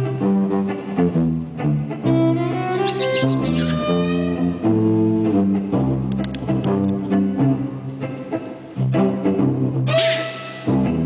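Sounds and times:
instrumental quartet playing: 0.0 - 11.0.

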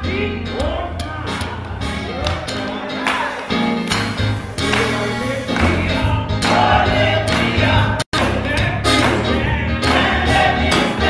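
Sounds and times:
bass line: 0.0 - 11.0
gospel choir and band: 0.0 - 11.0
congregation clapping: 1.4 - 11.0.

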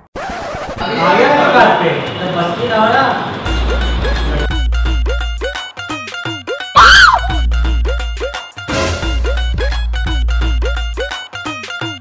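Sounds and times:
music with a voice: 3.5 - 5.4.

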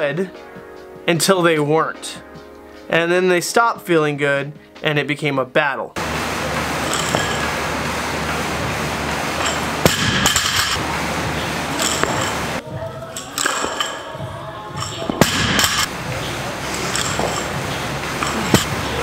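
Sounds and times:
noisy background: 6.0 - 19.0
barbell plates clinking: 6.4 - 10.9, 11.6 - 19.0.

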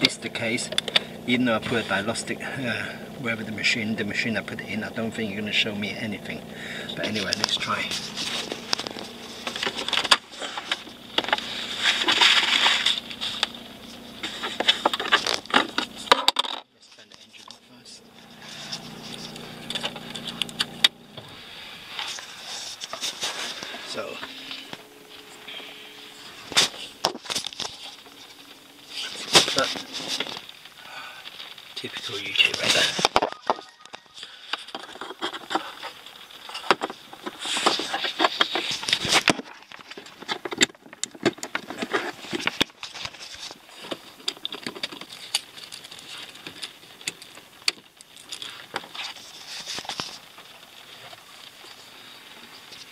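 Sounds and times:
low hum: 0.0 - 16.3, 17.4 - 39.2.

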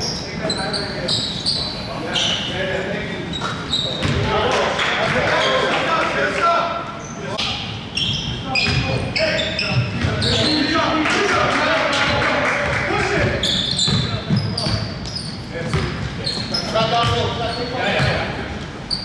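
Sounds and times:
sneaker squeaks: 0.0 - 4.4, 5.2 - 5.7, 6.9 - 11.0, 13.0 - 19.0.

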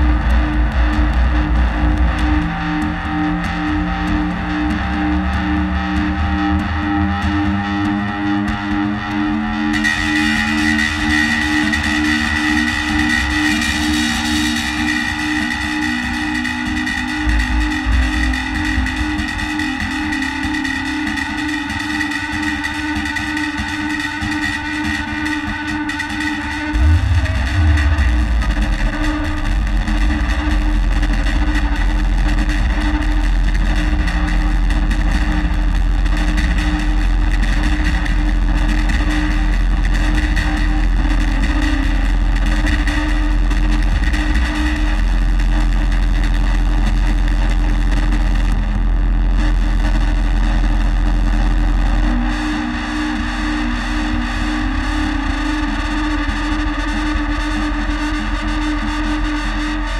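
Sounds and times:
distorted electronic noise music: 0.0 - 59.9
heavy sub-bass: 0.0 - 59.9.

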